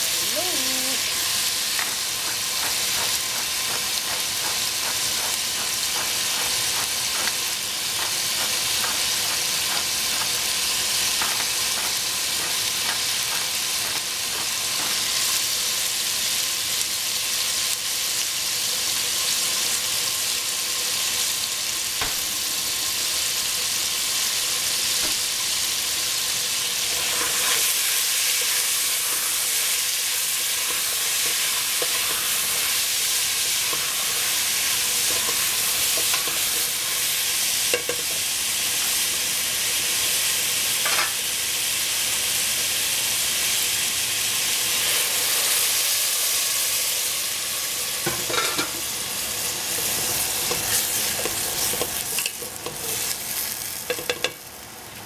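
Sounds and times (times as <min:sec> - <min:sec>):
squash sizzling in a pot: 0:00.0 - 0:55.0
spoon knocking and scraping pot: 0:35.0 - 0:36.7, 0:37.7 - 0:38.2, 0:48.0 - 0:48.8, 0:53.9 - 0:54.4.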